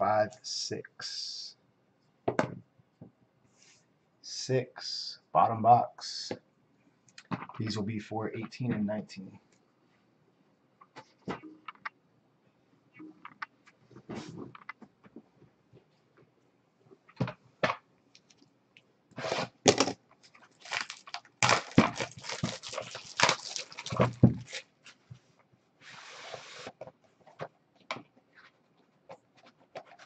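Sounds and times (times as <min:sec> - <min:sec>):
plastic wrap crinkling: 0:20.2 - 0:25.0.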